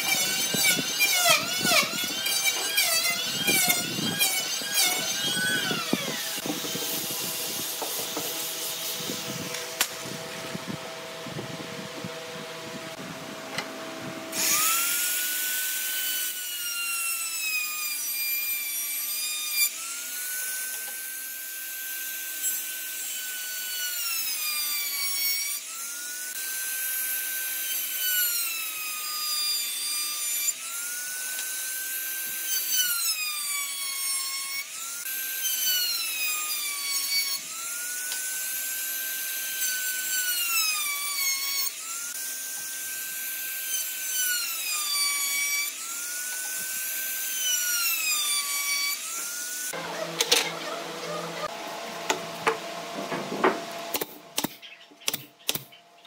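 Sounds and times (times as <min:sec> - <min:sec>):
electric router cutting wood: 0:00.0 - 0:54.0.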